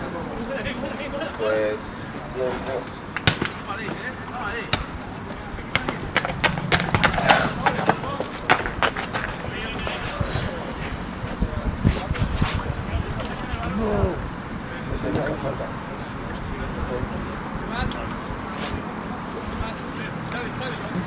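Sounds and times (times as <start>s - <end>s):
distant voices calling out: 0.0s - 21.0s.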